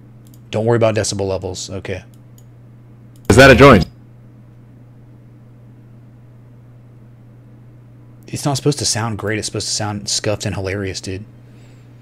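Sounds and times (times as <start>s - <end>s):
low hum: 3.3s - 3.9s.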